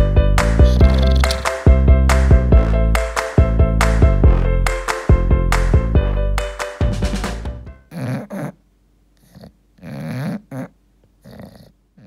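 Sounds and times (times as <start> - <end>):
dog snoring: 7.9 - 8.6, 9.2 - 12.0.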